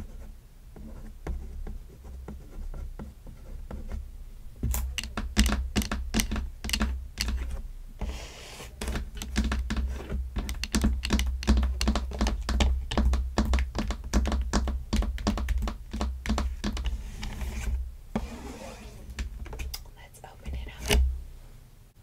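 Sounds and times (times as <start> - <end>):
fingernails tapping on packaging: 4.6 - 8.2, 8.8 - 18.3
soft rub: 7.4 - 8.9, 16.9 - 19.2.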